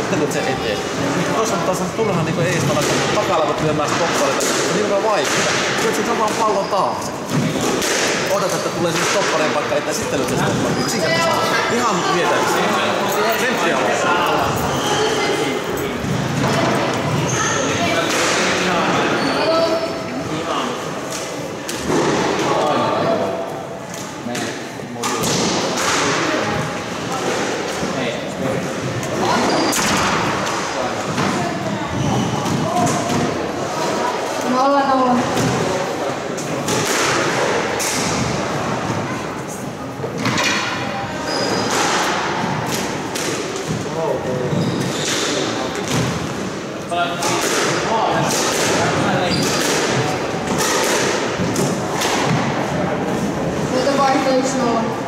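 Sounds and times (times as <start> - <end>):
people talking: 0.0 - 42.9, 46.8 - 55.0
squash ball hits echoing: 2.4 - 10.8, 16.0 - 18.8, 23.9 - 27.8, 29.0 - 34.1, 36.5 - 39.1, 40.1 - 46.6, 47.2 - 54.0.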